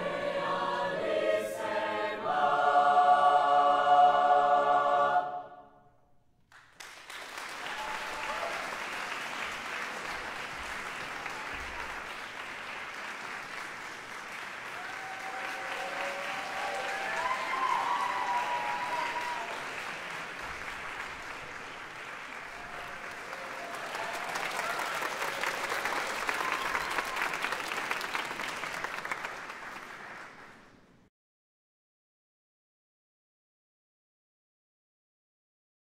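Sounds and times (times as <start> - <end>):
choir singing chord: 0.0 - 5.9
audience applauding: 6.5 - 30.8.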